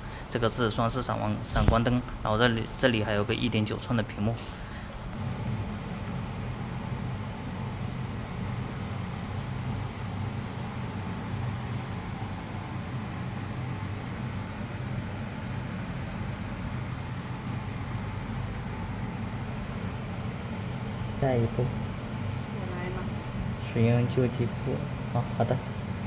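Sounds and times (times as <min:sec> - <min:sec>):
ventilation hum and hiss: 0:00.0 - 0:26.0.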